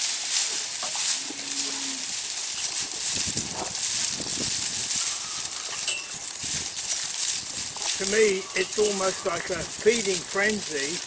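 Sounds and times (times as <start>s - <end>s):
cattle chewing dry hay: 0.0s - 11.0s.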